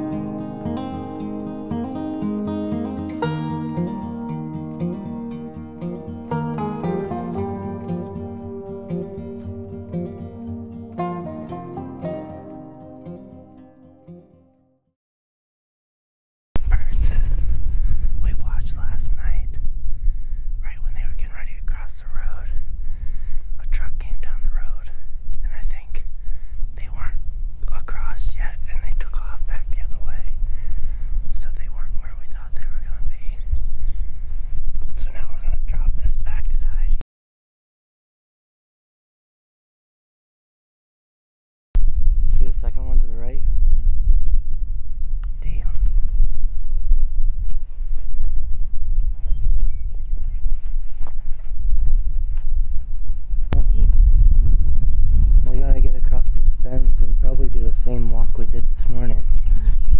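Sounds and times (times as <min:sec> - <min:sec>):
steady low rumble: 0:16.6 - 0:37.0, 0:41.8 - 0:59.9
wind buffeting microphone: 0:16.6 - 0:37.0, 0:41.8 - 0:59.9
man whispering: 0:16.7 - 0:17.4, 0:18.2 - 0:19.6, 0:20.6 - 0:22.7, 0:23.6 - 0:26.1, 0:26.8 - 0:30.5, 0:31.3 - 0:33.5, 0:35.0 - 0:37.0, 0:45.4 - 0:46.0.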